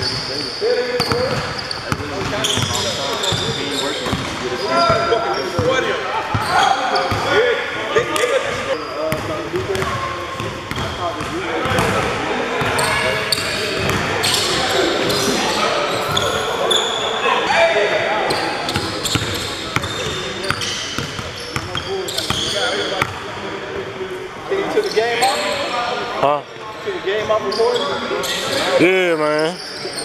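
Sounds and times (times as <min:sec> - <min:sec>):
players' voices echoing: 0:00.0 - 0:30.0.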